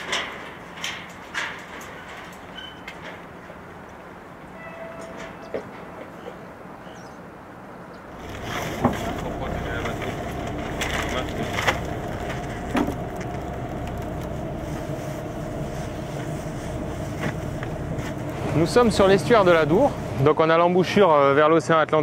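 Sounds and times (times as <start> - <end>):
boat engine humming: 8.0 - 21.5.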